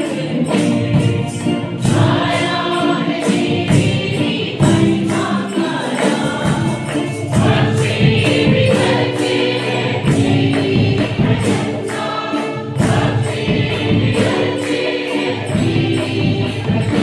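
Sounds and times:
choir singing: 0.0 - 17.0
percussion beat: 0.0 - 17.0.

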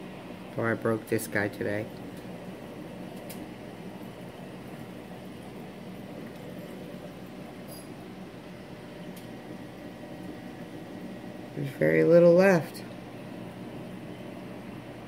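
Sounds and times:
aquarium pumps humming: 0.0 - 15.0.

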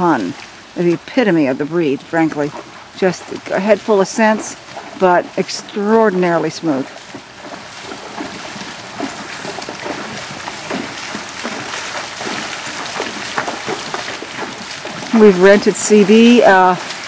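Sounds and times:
hooves splashing in water: 0.0 - 17.0
water rushing: 0.0 - 17.0.

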